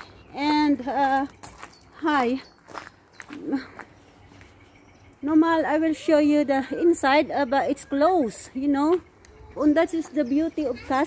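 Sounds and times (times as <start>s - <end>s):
faint outdoor background: 0.0s - 11.0s.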